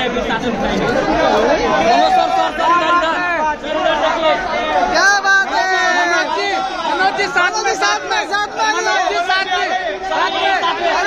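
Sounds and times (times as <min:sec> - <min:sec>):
voices talking and calling out: 0:00.0 - 0:11.0.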